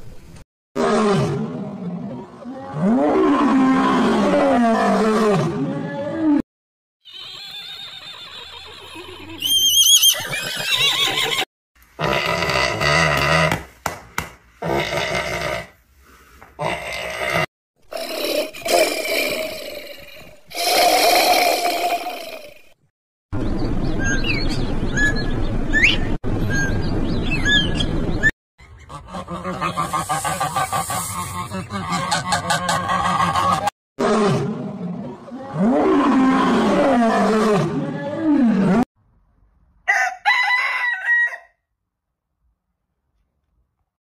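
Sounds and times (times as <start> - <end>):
lion roaring: 0.8 - 6.4, 34.0 - 38.8.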